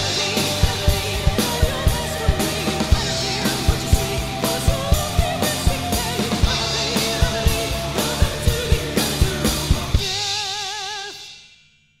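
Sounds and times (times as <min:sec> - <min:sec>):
rock backing track: 0:00.0 - 0:10.6
acoustic drum kit: 0:00.0 - 0:11.2.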